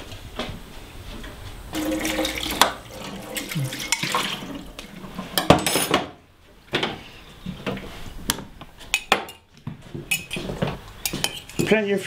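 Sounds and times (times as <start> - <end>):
dishes clinking in a steel sink: 1.8 - 6.2, 10.1 - 11.7.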